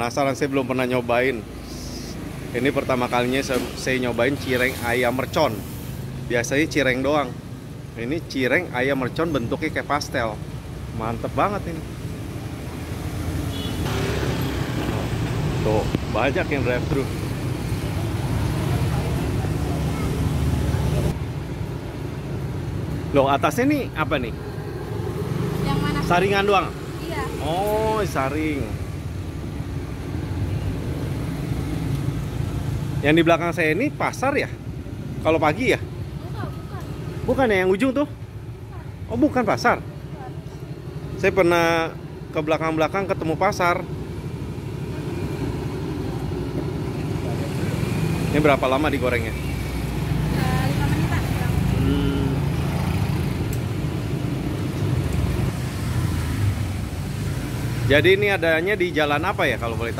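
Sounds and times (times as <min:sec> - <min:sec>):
road noise: 0:00.0 - 0:59.9
motor scooters passing: 0:12.0 - 0:22.8, 0:24.1 - 0:33.0, 0:43.7 - 0:58.8.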